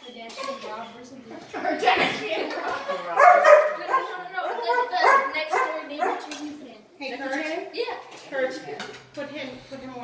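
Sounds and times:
dog barking and whining: 0:03.2 - 0:06.2.

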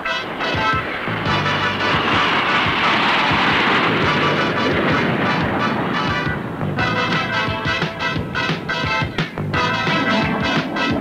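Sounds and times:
background music: 0:00.0 - 0:11.0
jets passing overhead: 0:00.0 - 0:11.0.

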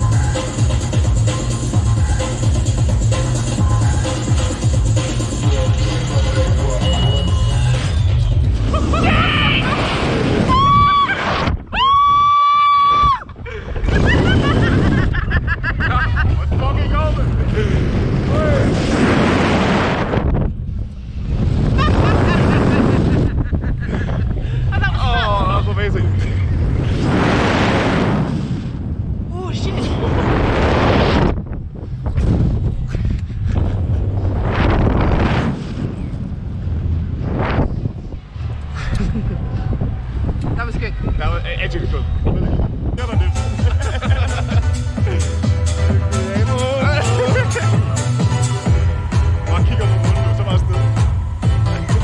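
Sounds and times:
rushing air: 0:00.0 - 0:52.0
wind buffeting microphone: 0:07.4 - 0:44.2, 0:46.6 - 0:52.0
woman screaming: 0:08.9 - 0:09.7, 0:10.5 - 0:13.3.

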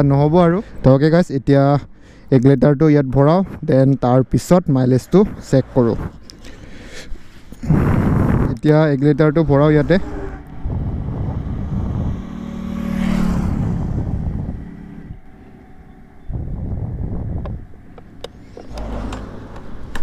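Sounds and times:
vehicles passing: 0:00.0 - 0:20.0.

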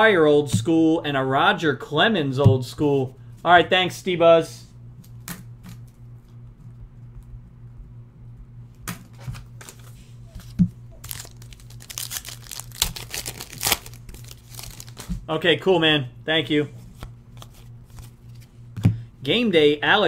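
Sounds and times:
foil wrapper tearing and crinkling: 0:10.4 - 0:15.1.

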